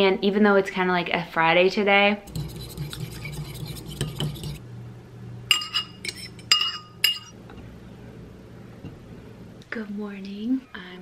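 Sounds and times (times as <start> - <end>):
fork whisking eggs: 2.3 - 4.6
fork clinking against bowl: 5.5 - 7.4.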